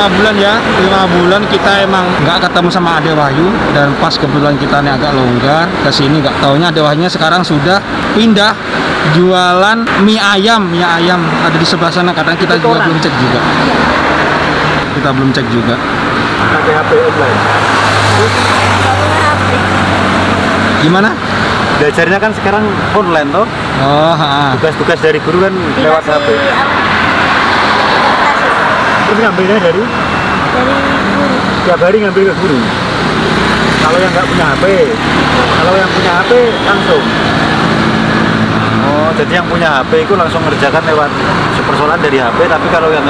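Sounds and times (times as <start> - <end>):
road noise: 0.0 - 43.0
vehicle engine hum: 0.0 - 43.0.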